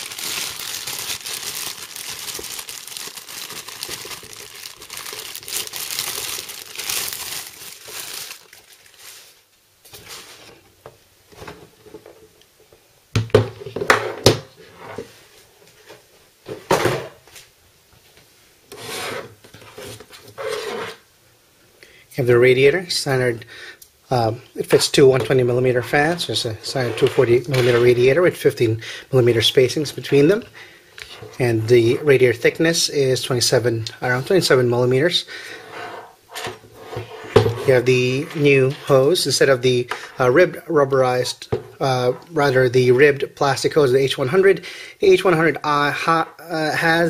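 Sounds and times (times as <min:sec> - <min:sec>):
plastic bag crinkling: 0:00.0 - 0:10.4.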